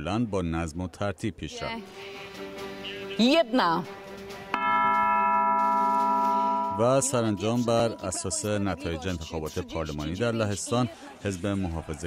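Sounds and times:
bell-like chord: 4.5s - 8.9s.

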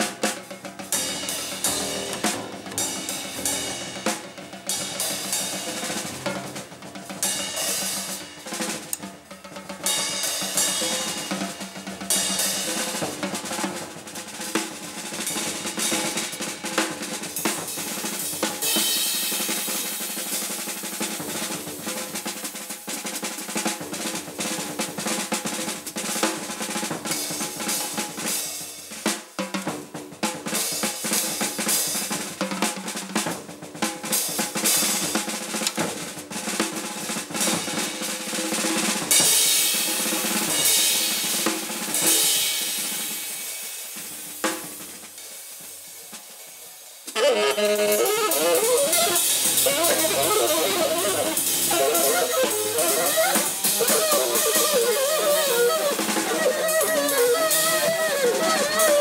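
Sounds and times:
cymbals: 0.0s - 59.0s
snare drum strokes and rolls: 0.0s - 59.0s
bass drum: 0.7s - 7.2s, 47.2s - 59.0s.

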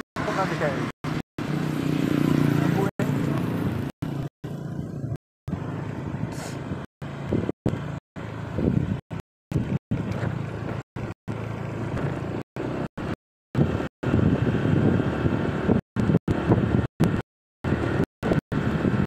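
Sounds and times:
road and wind noise: 0.0s - 19.0s
vehicle engine pulling away: 9.6s - 16.8s.

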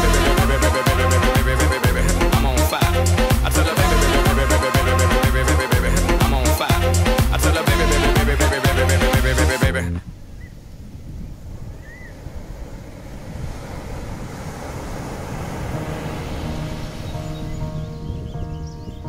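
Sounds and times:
dance music: 0.0s - 10.0s
wind and surf: 0.0s - 19.0s.

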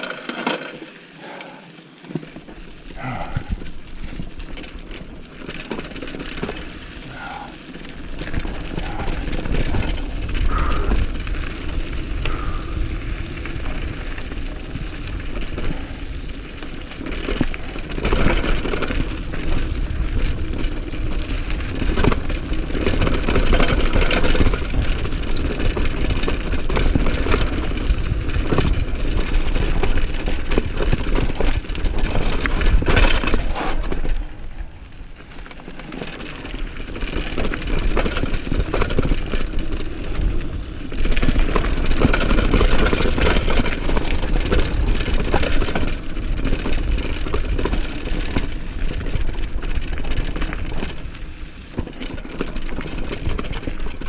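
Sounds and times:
bike rattling over bumps: 0.0s - 54.0s
bike tyres crunching over gravel: 0.0s - 54.0s
wind buffeting microphone: 8.0s - 16.5s.

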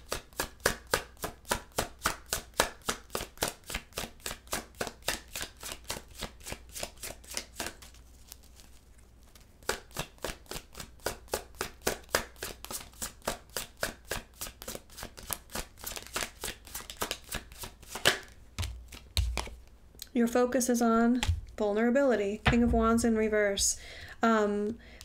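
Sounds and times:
cards being shuffled: 3.9s - 19.7s.

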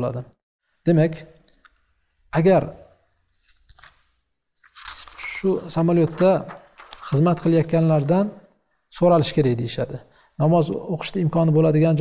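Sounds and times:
paper sheets rustling: 3.3s - 8.2s.

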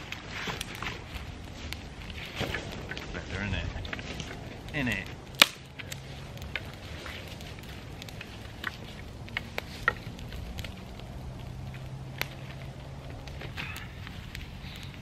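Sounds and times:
campfire crackling: 0.0s - 15.0s
wood pops and snaps: 5.0s - 6.8s.

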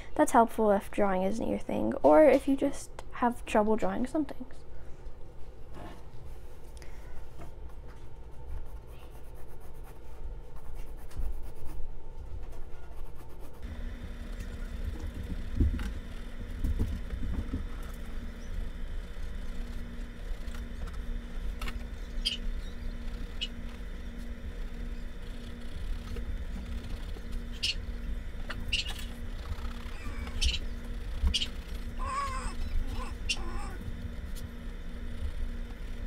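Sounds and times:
faint pulsing hum: 0.0s - 36.0s
pencil scratching on canvas: 8.4s - 11.8s.

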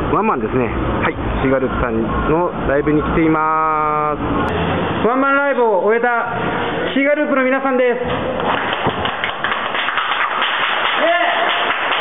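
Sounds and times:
people clapping: 8.1s - 12.0s.

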